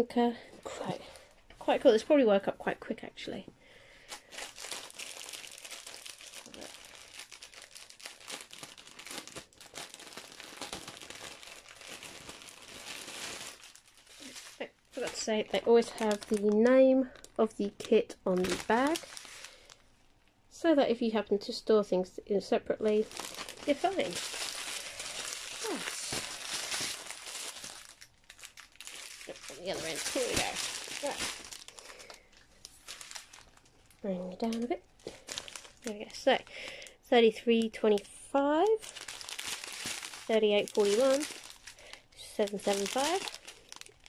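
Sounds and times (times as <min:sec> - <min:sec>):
plastic packets crinkling: 0:03.9 - 0:19.9, 0:22.8 - 0:44.0
plastic bag crinkling: 0:04.0 - 0:19.9, 0:22.8 - 0:36.9, 0:37.6 - 0:44.0.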